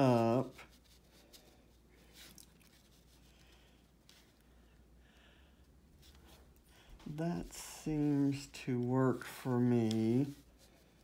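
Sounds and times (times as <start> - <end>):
paper rustling: 7.0 - 11.0.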